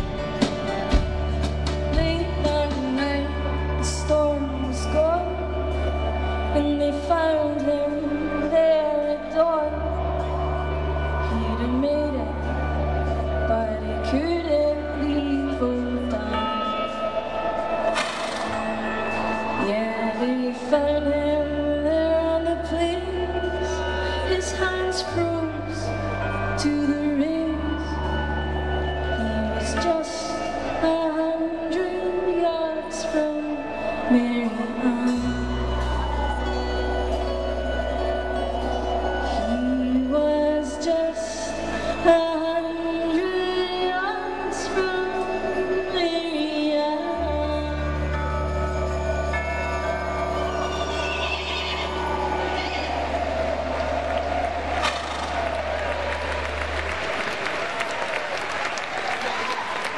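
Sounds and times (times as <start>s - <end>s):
live band playing country ballad: 0.0s - 8.6s.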